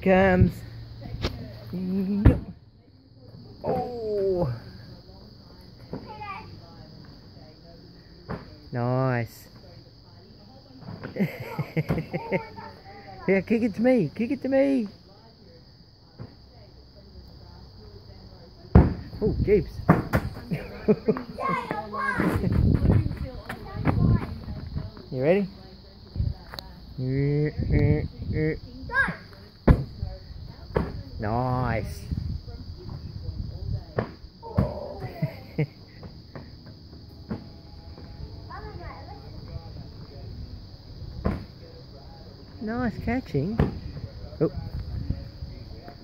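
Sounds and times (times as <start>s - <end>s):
quiet outdoor ambience: 0.0s - 46.0s
beach ball thump: 18.7s - 19.1s, 29.6s - 30.0s.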